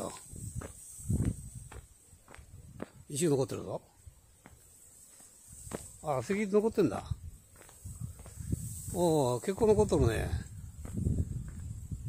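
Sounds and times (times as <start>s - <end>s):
footsteps on concrete and grass: 0.0s - 12.0s.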